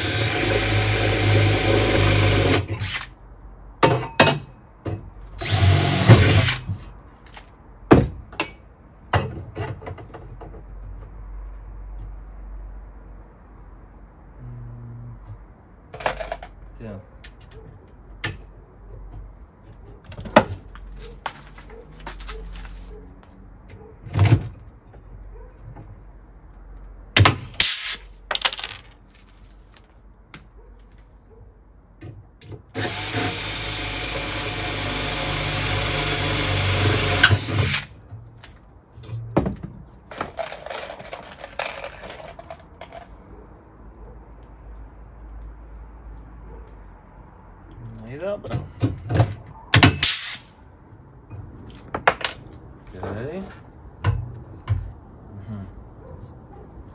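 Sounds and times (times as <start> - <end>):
cordless drill drilling into metal: 0.0 - 3.0, 5.4 - 6.7, 32.8 - 37.9
tools and metal parts clicking: 40.1 - 43.2.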